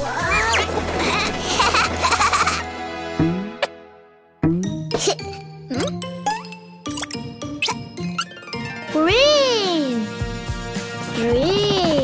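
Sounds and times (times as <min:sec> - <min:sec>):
children's music: 0:04.4 - 0:12.0.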